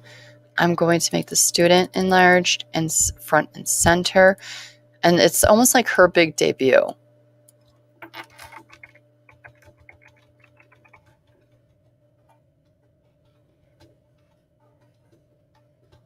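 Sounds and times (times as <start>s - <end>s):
faint keyboard typing: 7.5s - 16.0s.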